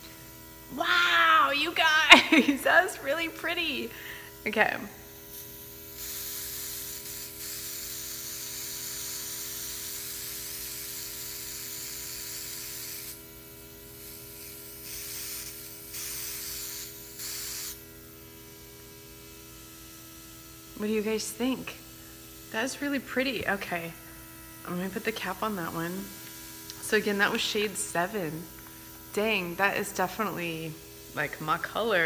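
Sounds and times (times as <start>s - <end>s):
compressor humming: 0.0s - 5.1s
airbrush hissing: 5.1s - 13.3s, 13.9s - 17.9s.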